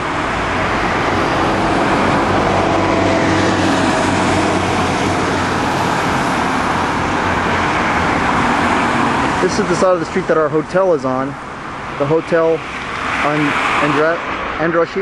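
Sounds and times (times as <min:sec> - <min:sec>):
bus engine humming: 0:00.0 - 0:15.0
passing cars rushing: 0:00.0 - 0:15.0.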